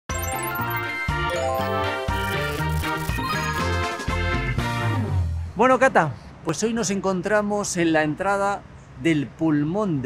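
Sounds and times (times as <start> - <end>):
music jingle: 0.1 - 5.3.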